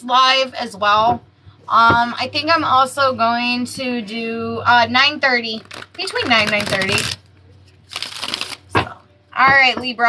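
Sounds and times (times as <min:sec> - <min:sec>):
cards shuffling: 0:05.6 - 0:07.2, 0:07.8 - 0:08.8.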